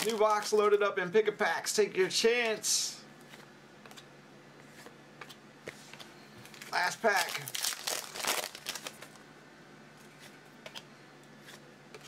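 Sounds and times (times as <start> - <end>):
foil wrapper crinkling: 0.0 - 0.8, 6.4 - 9.2.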